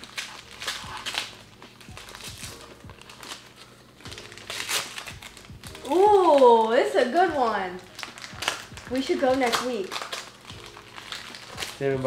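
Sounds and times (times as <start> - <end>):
faint background music: 0.0 - 12.0
wrapping paper crinkling and tearing: 0.0 - 12.0.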